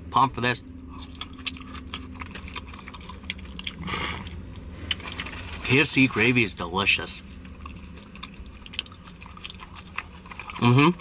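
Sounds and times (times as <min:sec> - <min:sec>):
person chewing fries: 0:00.8 - 0:11.0.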